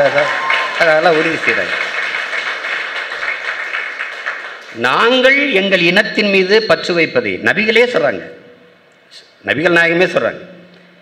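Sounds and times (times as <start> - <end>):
audience applauding: 0.0 - 4.9.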